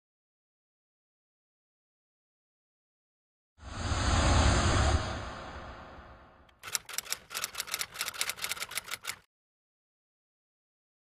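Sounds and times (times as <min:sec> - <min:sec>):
whoosh with deep rumble: 0:03.6 - 0:06.5
quick clicks and ticks: 0:06.5 - 0:09.3.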